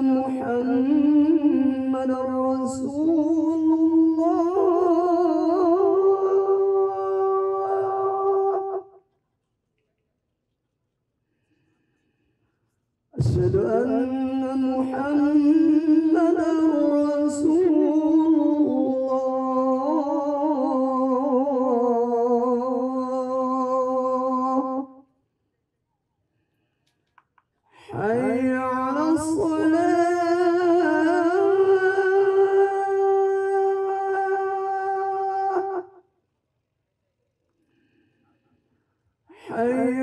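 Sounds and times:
man chanting a prayer: 0.0 - 9.0, 13.2 - 25.0, 27.8 - 36.0, 39.3 - 40.0.

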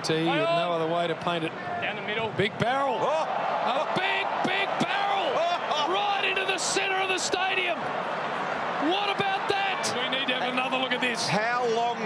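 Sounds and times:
men commentating: 0.0 - 8.0, 8.6 - 12.0
stadium crowd noise: 0.0 - 12.0.

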